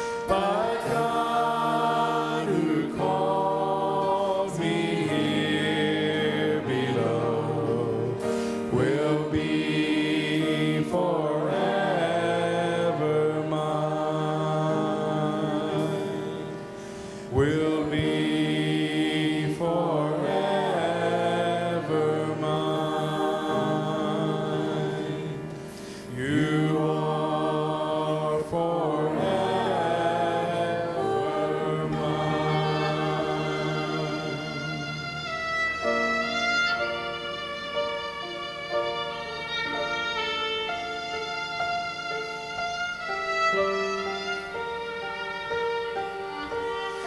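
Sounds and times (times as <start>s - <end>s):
hymn accompaniment: 0.0s - 45.5s
bowed string slow melody: 0.0s - 47.0s
choir singing slow song: 0.0s - 47.0s.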